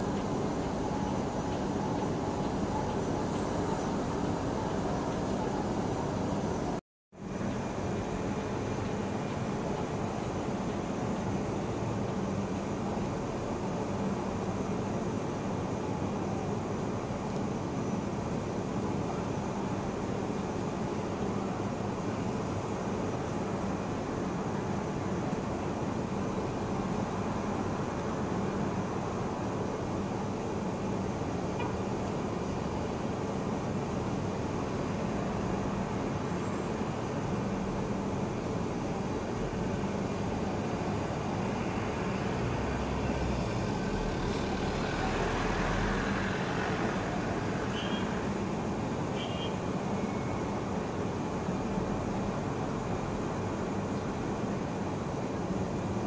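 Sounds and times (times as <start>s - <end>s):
road traffic hum: 0.0s - 56.0s.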